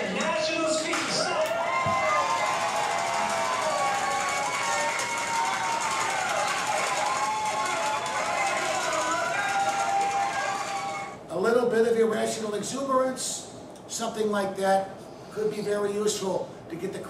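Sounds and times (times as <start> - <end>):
crowd cheering and shouting: 0.0 - 11.2.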